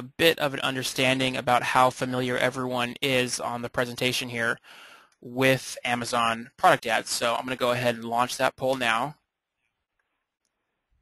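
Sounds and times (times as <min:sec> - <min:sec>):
man speaking: 0:00.0 - 0:09.3.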